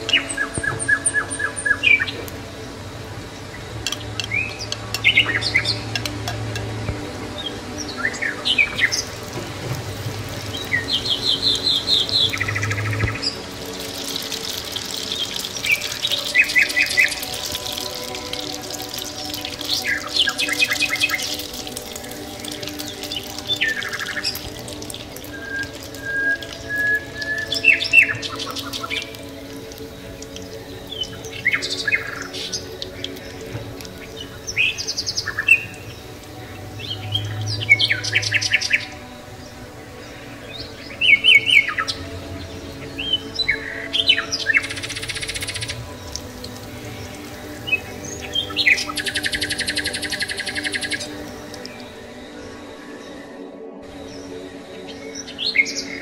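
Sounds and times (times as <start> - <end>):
background music with sustained tones: 0.0 - 56.0
birds chirping and trilling: 0.0 - 56.0.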